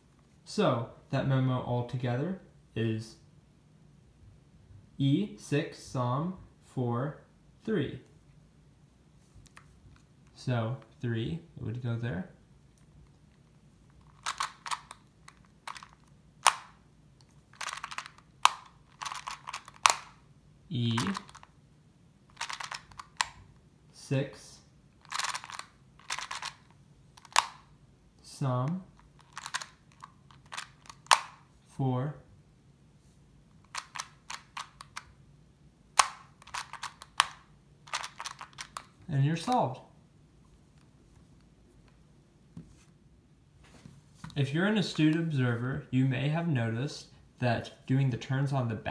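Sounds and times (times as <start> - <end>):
puzzle wheels clicking: 14.0 - 16.7, 17.5 - 20.2, 20.9 - 21.5, 22.3 - 23.4, 25.0 - 27.6, 29.2 - 31.3, 36.0 - 38.9.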